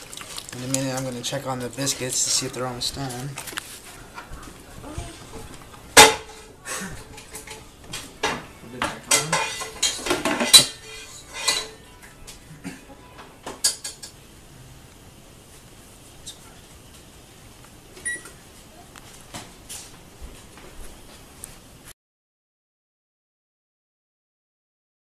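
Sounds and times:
metal utensil scraping skillet: 9.1 - 11.8.

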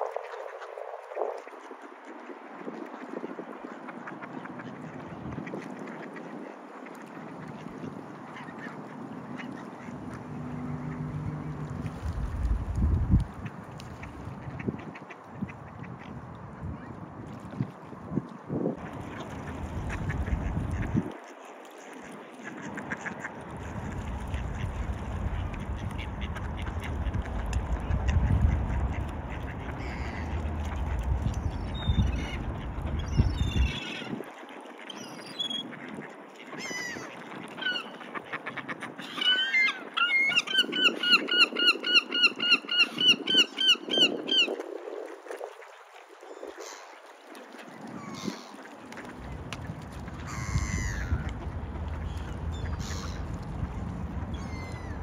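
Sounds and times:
wind rumbling on microphone: 0.0 - 55.0
ducks quacking: 3.6 - 11.7, 18.8 - 44.5, 47.5 - 55.0.

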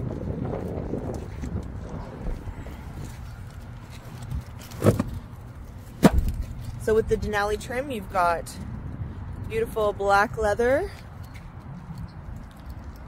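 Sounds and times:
wind rumble on microphone: 0.0 - 13.0
sharp knock: 6.0 - 6.4.

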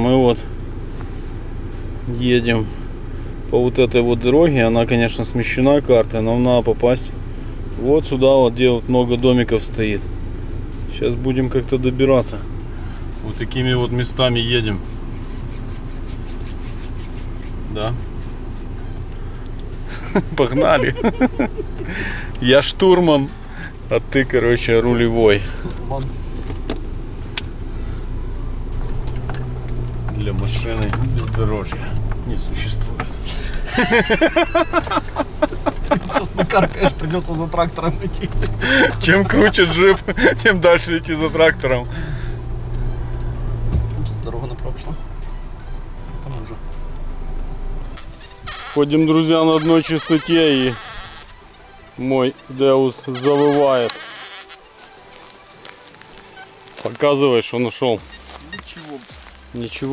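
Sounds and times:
car engine humming: 0.0 - 59.9
metal detector wailing tone: 48.0 - 54.5.

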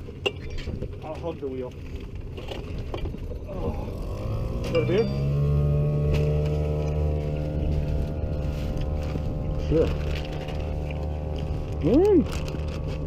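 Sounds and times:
low rumble: 0.0 - 13.0
motor running steadily: 0.0 - 13.0.

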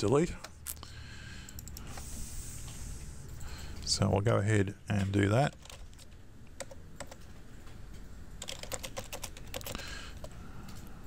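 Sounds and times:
typing on computer keyboard: 5.5 - 7.8, 8.4 - 10.8.

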